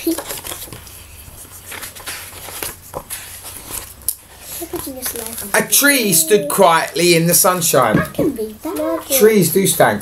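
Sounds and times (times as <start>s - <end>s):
book rustling and knocking: 0.1s - 4.0s.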